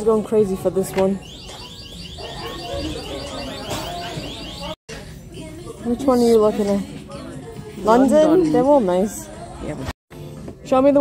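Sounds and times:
electronic alarm chirps: 1.2s - 4.8s.

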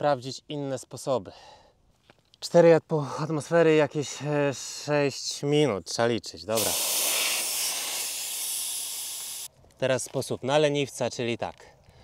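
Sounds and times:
air hissing from tyre valve: 6.6s - 9.5s.

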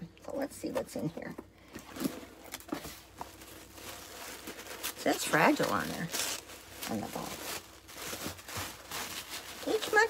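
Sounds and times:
box rustling: 1.8s - 10.0s.

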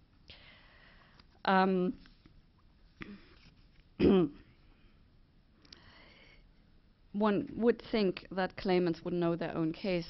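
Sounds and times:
woman clearing her throat: 4.0s - 4.5s.

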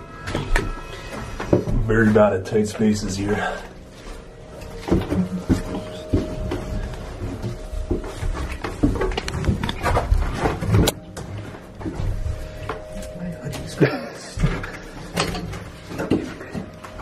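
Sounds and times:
background music: 0.0s - 17.0s
footsteps on wooden stairs: 3.9s - 13.2s.

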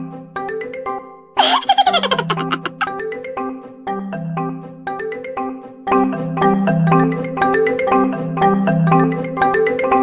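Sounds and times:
background music: 0.0s - 10.0s
high-pitched laughter: 1.4s - 2.9s.

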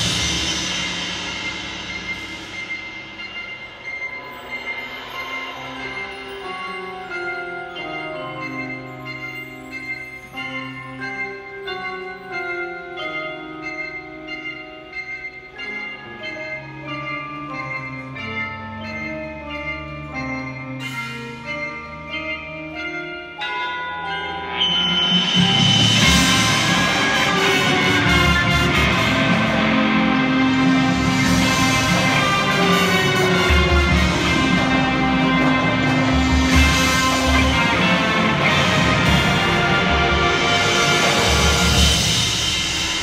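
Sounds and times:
percussion ensemble music: 0.0s - 43.0s.

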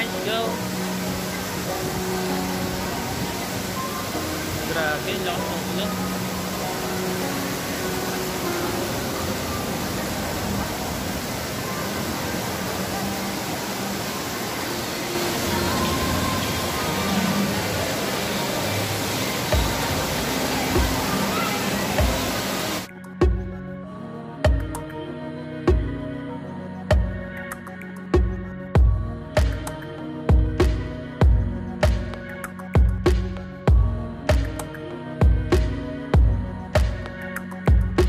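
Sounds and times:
loud rushing outdoor ambience: 0.0s - 22.9s
music with slow bass beat: 22.9s - 23.8s, 24.4s - 25.0s, 25.7s - 26.0s, 26.9s - 38.0s.

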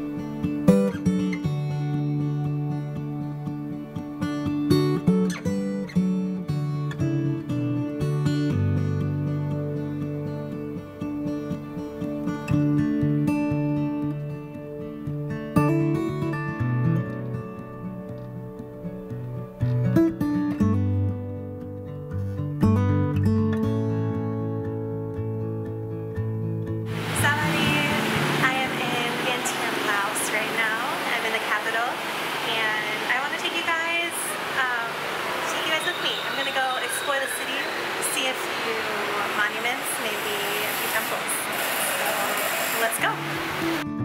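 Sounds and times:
acoustic guitar music: 0.0s - 44.0s
person speaking: 26.9s - 43.2s
steady background noise: 26.9s - 43.8s
steady noise: 26.9s - 43.8s.

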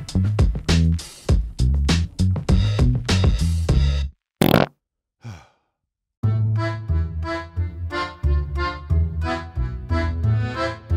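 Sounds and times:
cartoon fart sound effect: 4.4s - 4.7s
breathy sigh of relief: 5.2s - 5.7s.

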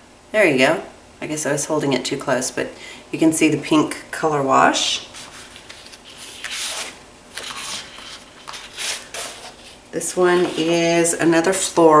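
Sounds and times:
paper sheets sliding and rustling: 5.1s - 11.0s.

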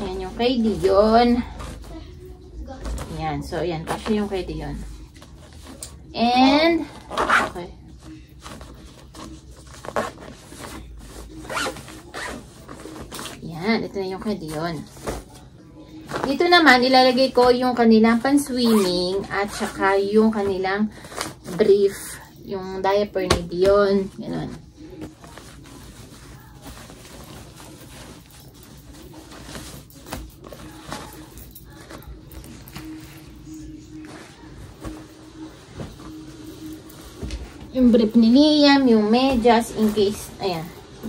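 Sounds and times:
diapers rustling and crinkling: 0.0s - 41.0s
zipper being pulled: 7.0s - 7.6s, 11.4s - 13.4s.

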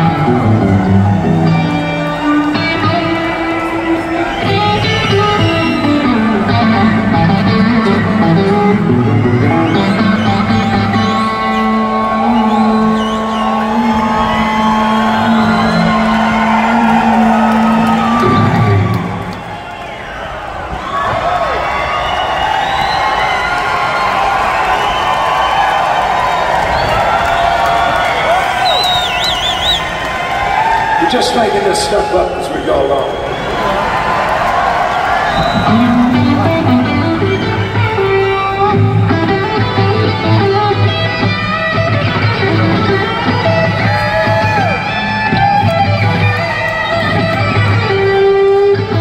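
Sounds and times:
band playing blues-rock riff: 0.0s - 19.4s, 35.3s - 49.0s
crowd cheering and shouting: 0.0s - 49.0s.

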